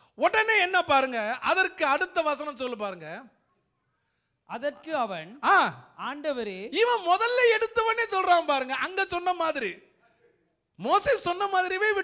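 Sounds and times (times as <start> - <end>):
man speaking into a microphone: 0.0 - 3.4, 4.4 - 12.0.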